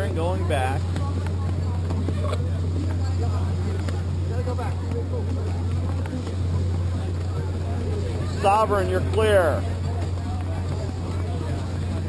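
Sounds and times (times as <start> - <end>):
faint voices talking: 0.0 - 12.0
low motor hum: 0.0 - 12.0.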